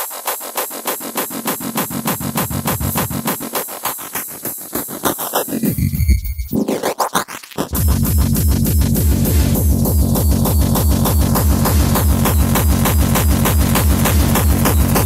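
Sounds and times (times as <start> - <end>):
fast electronic hardcore music: 0.0 - 15.0.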